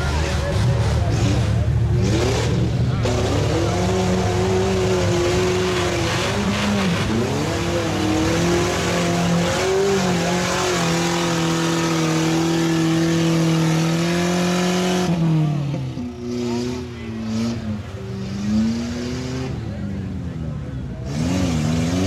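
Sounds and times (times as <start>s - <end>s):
tyres churning mud: 0.0s - 20.0s
truck engine labouring: 0.0s - 22.0s.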